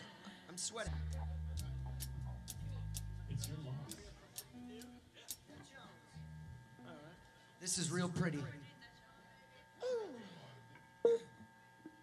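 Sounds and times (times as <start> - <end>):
low bass notes humming: 0.9 - 7.2.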